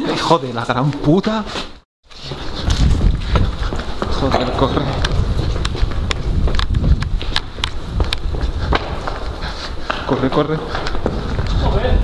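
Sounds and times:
hurried footsteps: 0.0s - 12.0s
microphone handling rumble: 2.3s - 9.6s.

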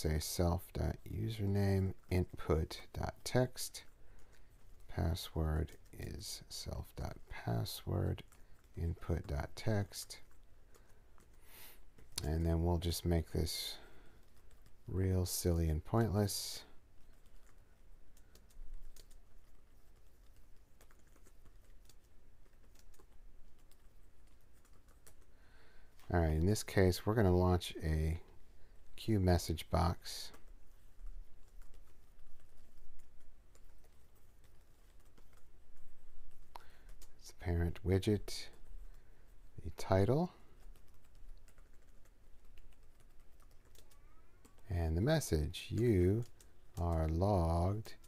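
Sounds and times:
keyboard typing: 0.1s - 48.0s.

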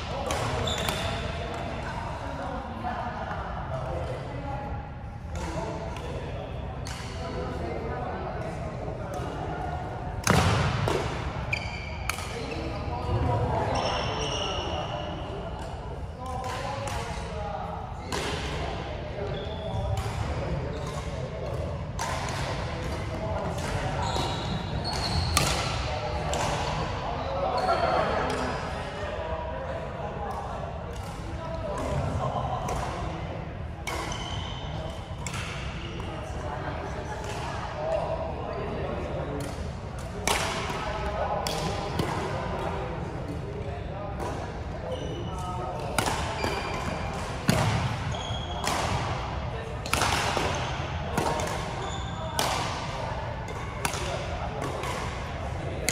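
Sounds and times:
shoes squeaking on court floor: 0.6s - 1.4s, 11.5s - 15.1s, 24.0s - 25.5s, 44.8s - 45.7s, 46.3s - 48.6s, 51.6s - 52.5s
racket striking shuttlecock: 45.9s - 47.8s, 53.8s - 55.1s.

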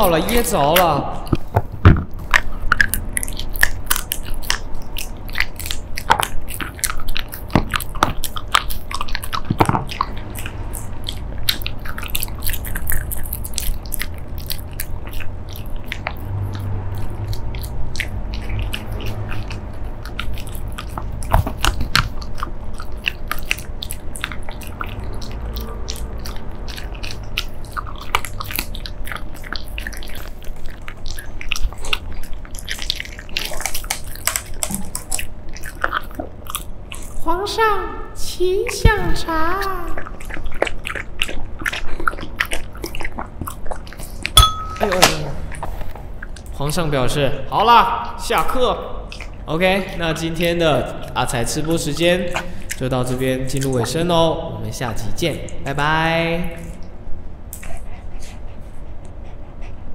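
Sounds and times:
dog chewing crunchy jerky: 0.0s - 59.9s.

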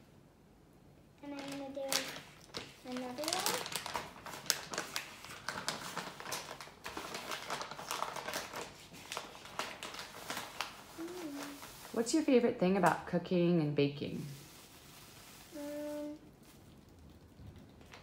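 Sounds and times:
plastic pouch crinkling: 1.2s - 12.0s
child humming: 11.0s - 11.6s, 15.5s - 16.2s.

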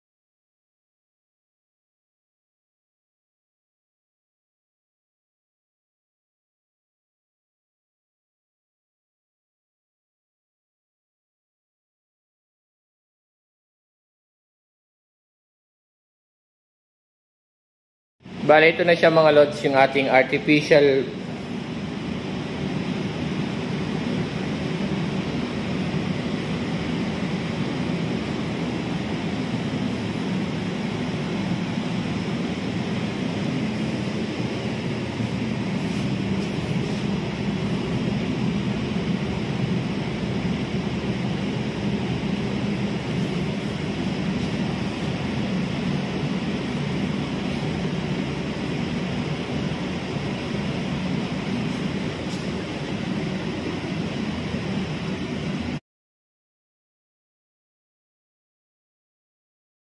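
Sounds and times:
low hum: 18.2s - 55.8s
steady rushing noise: 18.2s - 55.8s.

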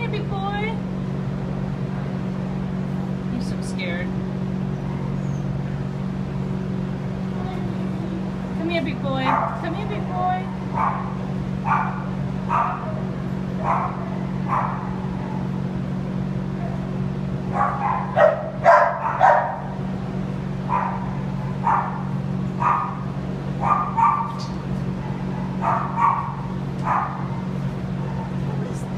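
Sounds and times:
steady low hum: 0.0s - 28.9s
dogs barking: 9.2s - 15.6s, 17.5s - 19.8s, 20.6s - 28.7s.

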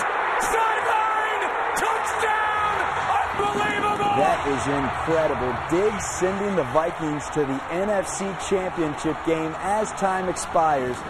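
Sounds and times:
stadium crowd cheering: 0.0s - 11.0s
announcer shouting: 0.4s - 11.0s.

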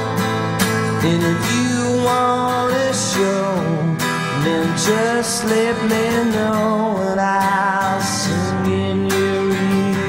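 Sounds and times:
acoustic guitar strummed: 0.0s - 10.0s
man singing: 0.8s - 10.0s.

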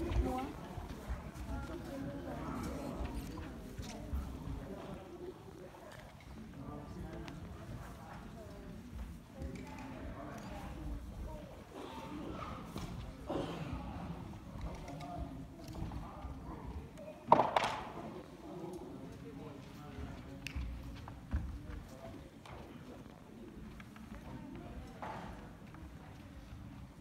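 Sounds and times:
footsteps on hall floor: 0.0s - 5.1s
background voices talking: 0.0s - 27.0s.

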